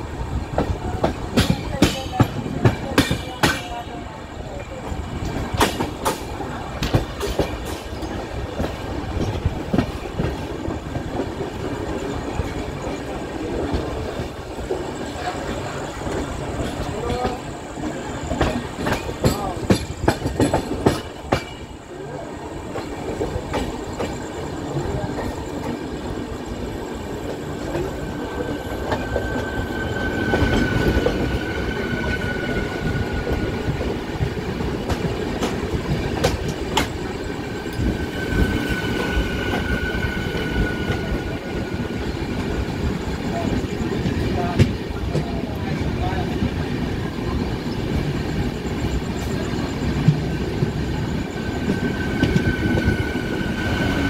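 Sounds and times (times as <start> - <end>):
passing train: 0.0 - 54.0
train rumbling: 0.0 - 54.0.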